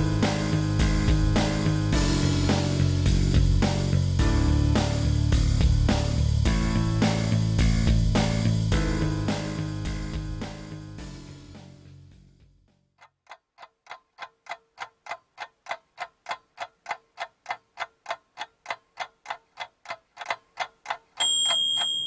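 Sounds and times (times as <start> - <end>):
clock ticking: 13.0 - 22.0
ringing timer ding: 21.2 - 22.0.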